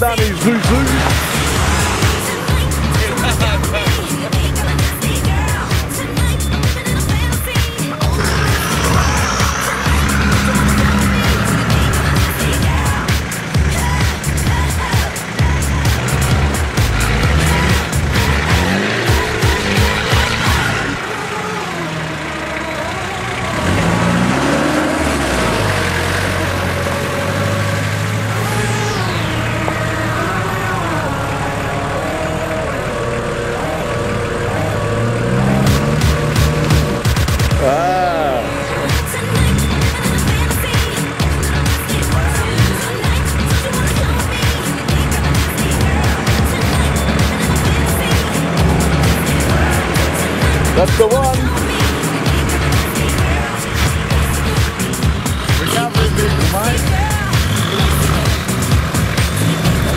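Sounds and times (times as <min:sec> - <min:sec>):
engine revving through mud: 0:00.0 - 0:59.9.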